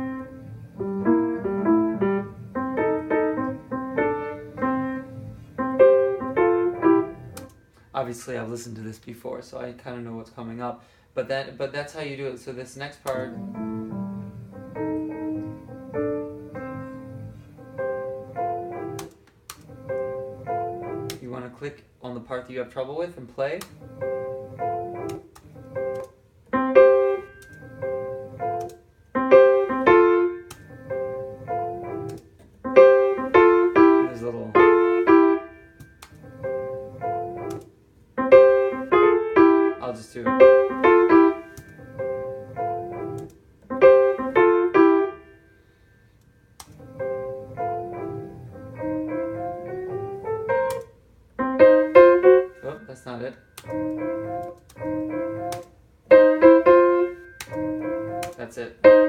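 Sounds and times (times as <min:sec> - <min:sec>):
jazz blues piano phrases: 0:00.0 - 0:07.6, 0:12.8 - 0:21.7, 0:22.8 - 0:45.8, 0:46.7 - 0:59.0.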